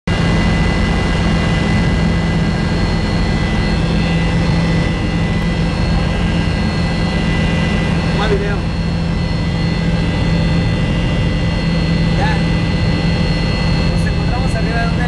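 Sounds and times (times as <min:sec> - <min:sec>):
helicopter engine and rotor drone: 0:00.1 - 0:15.0
high turbine whine: 0:00.1 - 0:15.0.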